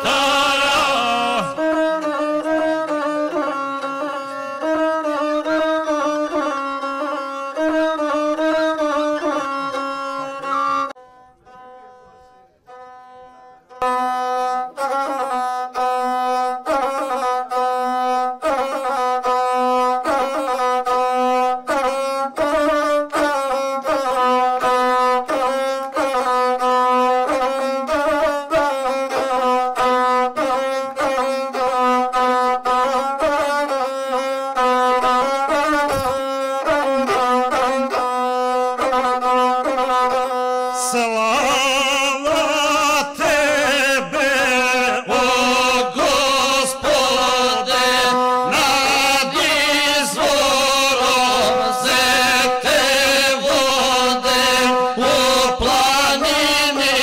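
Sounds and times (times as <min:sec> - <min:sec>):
bowed single-string fiddle melody: 0:00.0 - 0:57.0.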